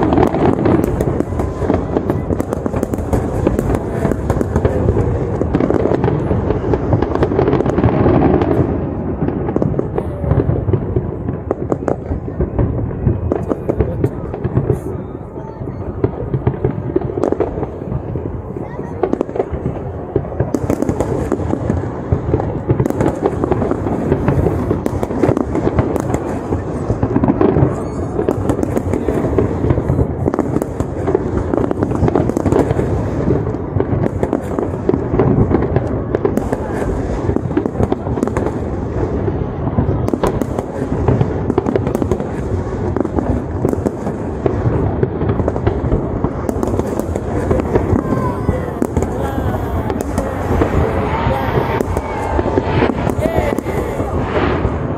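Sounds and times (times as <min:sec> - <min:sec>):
fireworks bangs and crackling: 0:00.0 - 0:54.9.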